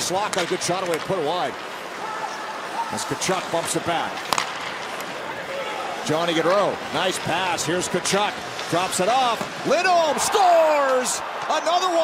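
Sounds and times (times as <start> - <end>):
hockey stick hitting puck: 0.0 - 1.6, 3.3 - 5.2, 6.4 - 9.9.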